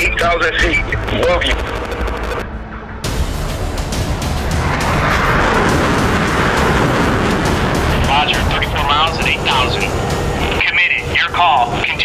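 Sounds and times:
background music: 0.0 - 12.0
jet engine whoosh: 4.0 - 10.6.

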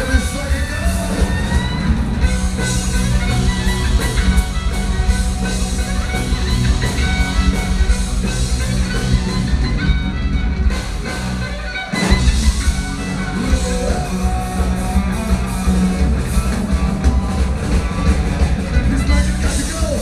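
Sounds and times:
distorted guitars: 0.0 - 20.0
heavy drums: 0.0 - 20.0
metal band playing live: 0.0 - 20.0.

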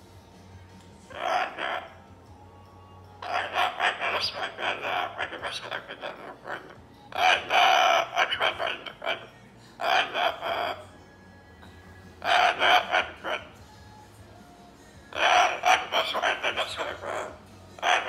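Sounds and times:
cockatoo babbling speech-like: 1.1 - 2.0, 3.2 - 10.9, 12.2 - 13.6, 15.1 - 18.0.

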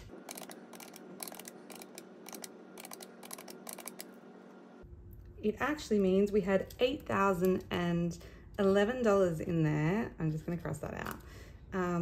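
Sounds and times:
calculator keys clicking: 0.3 - 4.1.

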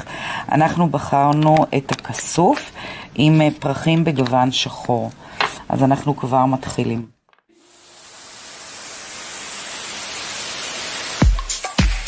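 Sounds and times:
white noise hiss: 7.6 - 11.8
music: 11.2 - 12.0.

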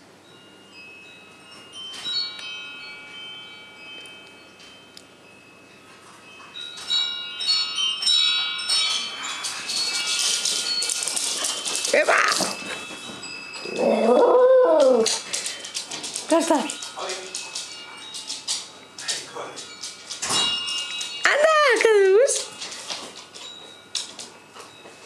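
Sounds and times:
metal chimes tinkling: 0.0 - 25.0
jangling and rustling: 5.8 - 25.0.

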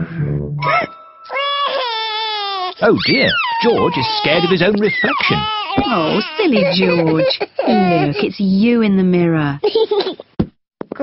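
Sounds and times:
cartoon pig wailing: 0.6 - 7.2.

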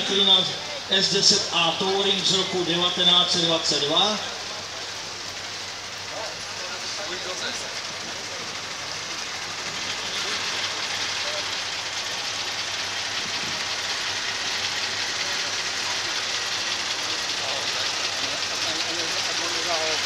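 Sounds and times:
car engine idling: 0.0 - 20.0
murmur of crowd: 0.0 - 20.0.

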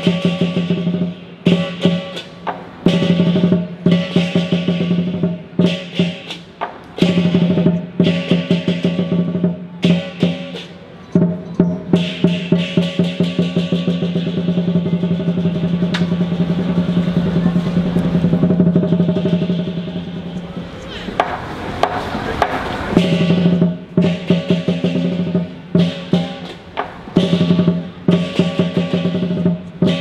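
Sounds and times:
cymbals clashing: 0.0 - 30.0
large drum beaten in a roll: 0.0 - 30.0.

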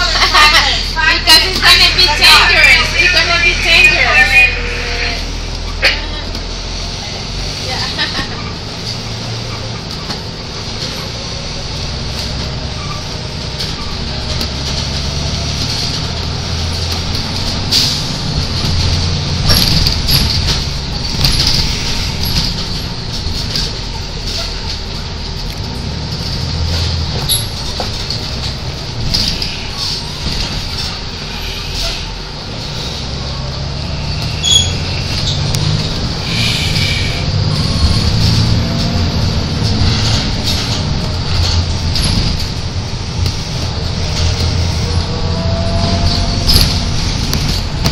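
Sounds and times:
car engine and road rumble: 0.0 - 47.9.

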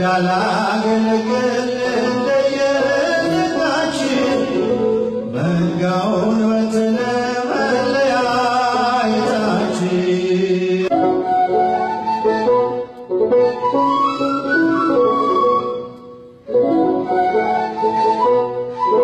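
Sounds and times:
man singing a hymn note: 0.0 - 11.0
end-blown flute melody: 0.9 - 10.2, 10.8 - 19.0.

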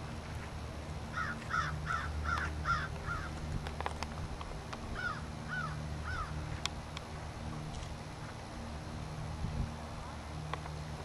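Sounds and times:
bird calling: 1.1 - 3.4, 4.9 - 6.4.

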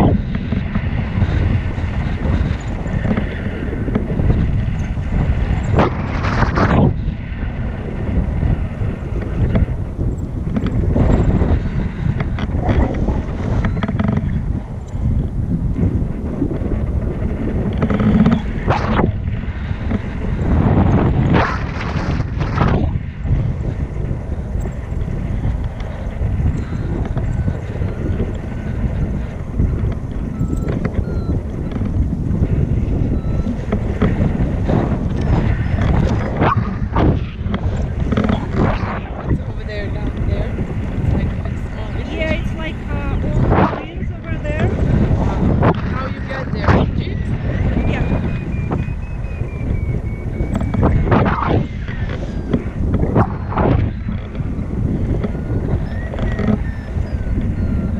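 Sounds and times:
wind buffeting microphone: 0.0 - 57.9.

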